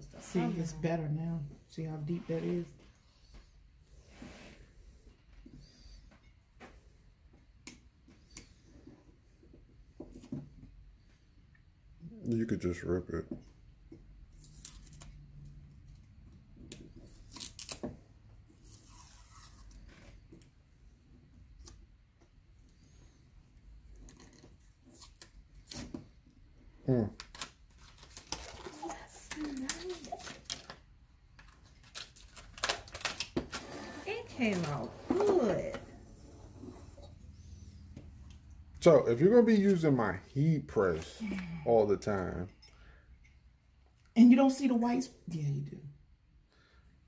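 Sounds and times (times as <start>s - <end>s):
person speaking: 0.0s - 2.8s
paper rustling and tearing: 27.3s - 30.8s.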